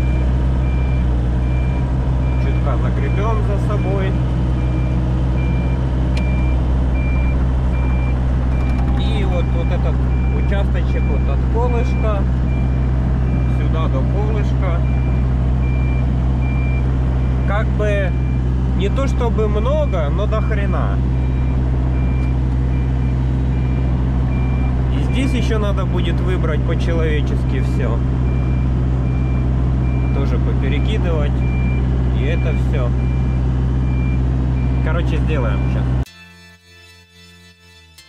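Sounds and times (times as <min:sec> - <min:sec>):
excavator warning beeps: 0:00.0 - 0:26.4, 0:27.6 - 0:36.0
diesel engine droning: 0:00.0 - 0:36.1.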